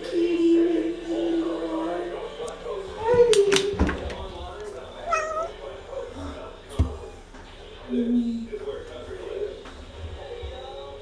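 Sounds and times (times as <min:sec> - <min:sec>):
cat meowing: 0:05.1 - 0:05.6.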